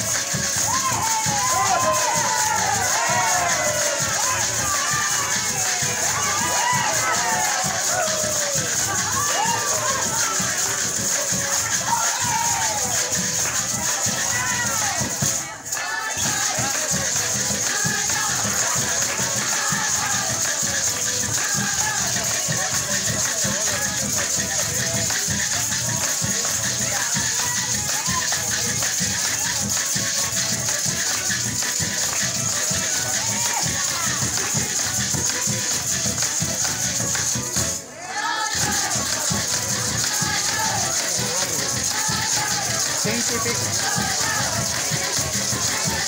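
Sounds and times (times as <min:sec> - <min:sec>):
hand-beaten drum: 0:00.0 - 0:46.0
maracas shaking: 0:00.0 - 0:46.0
violin: 0:00.0 - 0:46.0.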